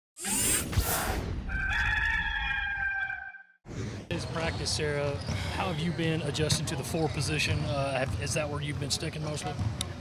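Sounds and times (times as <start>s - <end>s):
rooster crowing: 1.5s - 3.5s.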